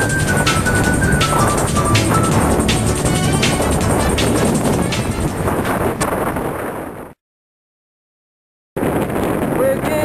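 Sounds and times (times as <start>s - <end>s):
wind buffeting microphone: 0.0s - 7.2s, 8.8s - 10.0s.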